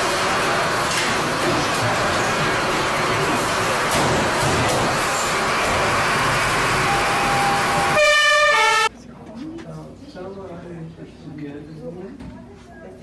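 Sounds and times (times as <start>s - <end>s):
loud rushing noise: 0.0s - 8.9s
stepped alarm tones: 6.5s - 8.9s.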